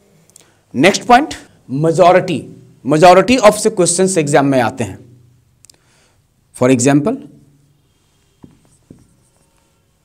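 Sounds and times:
marker writing on whiteboard: 8.2s - 9.9s
marker tapping whiteboard: 8.4s - 9.3s.

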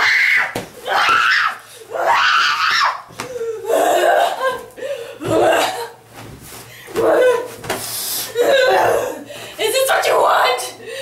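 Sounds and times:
young woman screaming: 0.0s - 3.1s.

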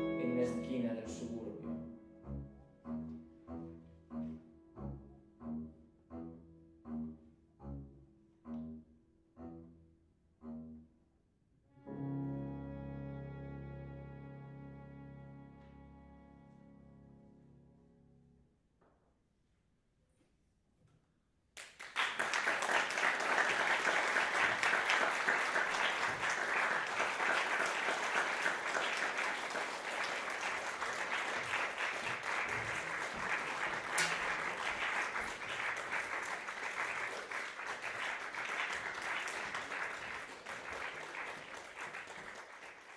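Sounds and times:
audience applause: 21.6s - 42.9s.

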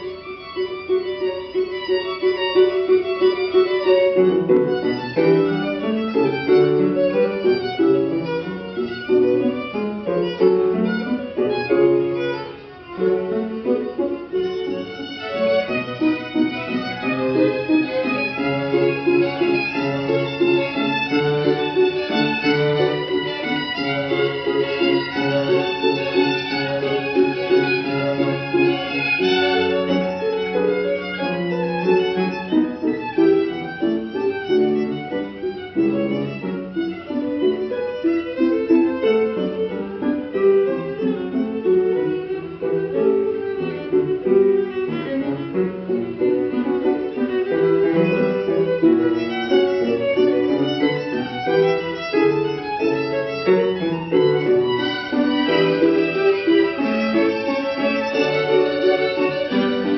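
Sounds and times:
violins playing classical piece: 0.0s - 59.9s.

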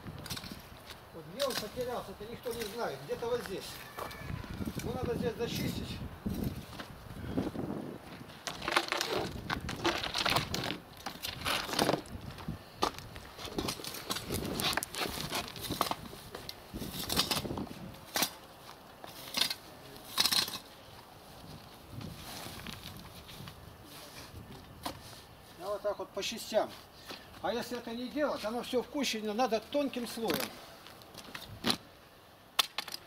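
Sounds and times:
rake scraping dry grass: 1.4s - 5.0s.

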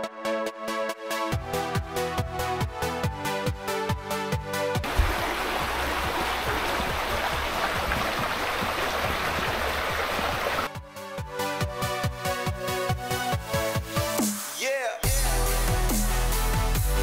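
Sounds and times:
creek running over stones: 4.8s - 10.7s
electronic music with steady beat: 10.7s - 17.0s.

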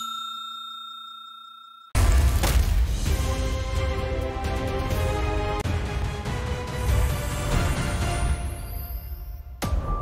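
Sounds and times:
bell-like ding: 0.0s - 2.0s.

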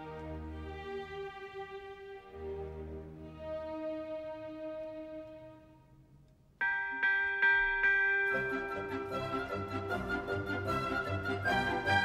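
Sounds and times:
orchestral bells ringing: 6.6s - 12.0s.

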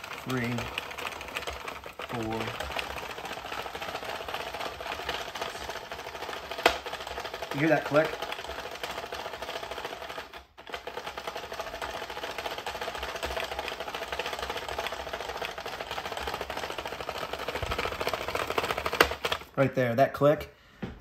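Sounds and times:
gear clicking: 0.0s - 19.5s
knitting machine plastic clatter: 0.0s - 19.5s.

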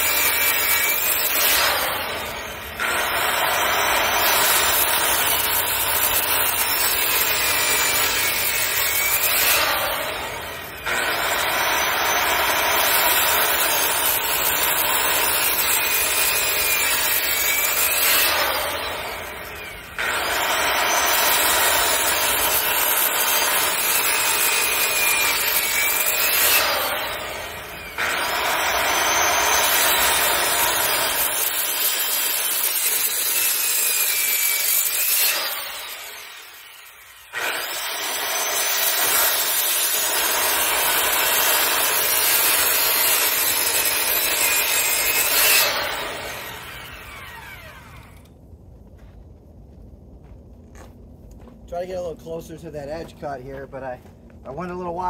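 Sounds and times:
circular saw cutting wood: 0.0s - 48.4s.

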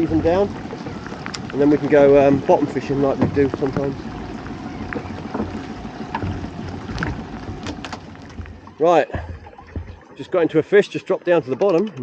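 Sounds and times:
heavy rain on the sea: 0.0s - 9.3s
low steady hum: 0.0s - 11.3s.

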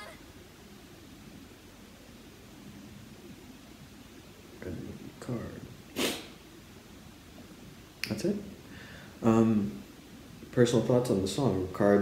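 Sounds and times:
short breathy hiss: 5.9s - 6.4s, 8.6s - 9.2s.

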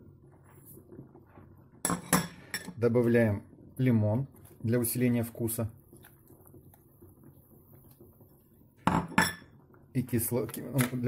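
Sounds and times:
kitchenware clinking: 1.8s - 2.8s, 8.8s - 9.6s.

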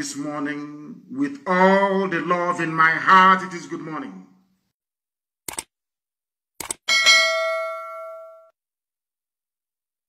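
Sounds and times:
notification bell chime: 6.9s - 8.5s.

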